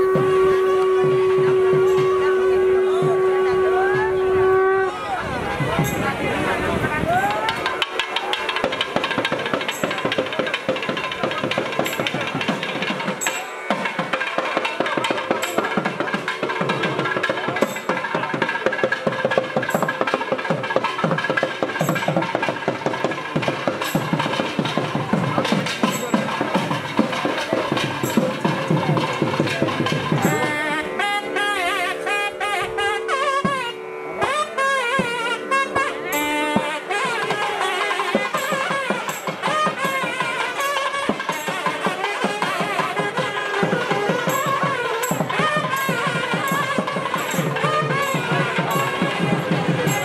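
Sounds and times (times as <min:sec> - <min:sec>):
voices: 0:00.0 - 0:50.0.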